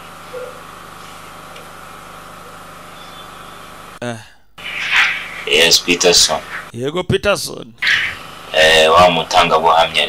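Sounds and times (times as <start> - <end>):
machine hum with whine: 0.0 - 6.7, 7.8 - 10.0.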